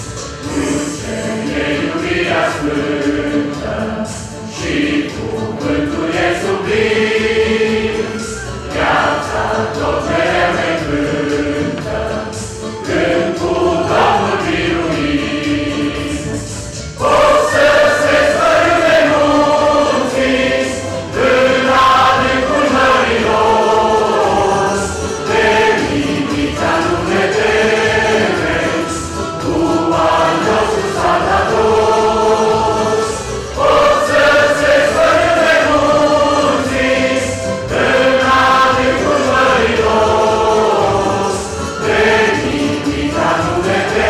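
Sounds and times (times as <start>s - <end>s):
mixed choir singing: 0.0s - 44.0s.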